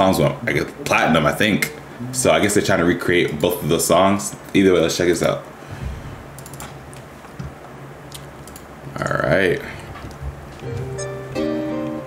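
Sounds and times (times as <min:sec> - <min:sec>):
low steady hum: 0:00.0 - 0:12.0
keyboard and mouse clicks: 0:06.4 - 0:07.5, 0:08.1 - 0:08.7.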